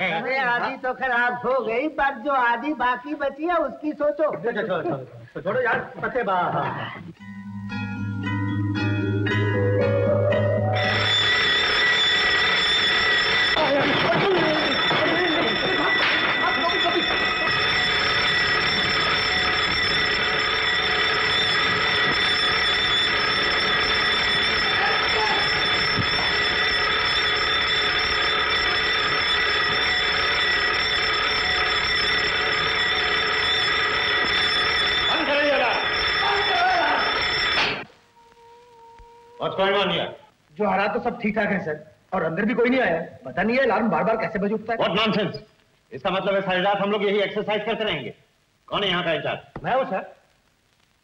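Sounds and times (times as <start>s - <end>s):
men talking: 0.0s - 7.2s, 13.6s - 17.6s, 35.1s - 37.2s, 39.4s - 48.1s
burglar alarm ringing: 7.2s - 37.9s, 44.3s - 45.4s.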